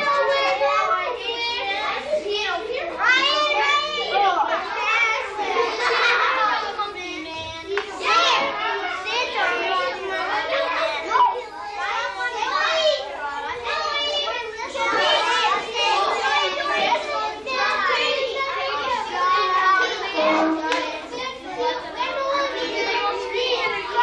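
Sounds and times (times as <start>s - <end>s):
young children talking and calling out: 0.0s - 24.0s.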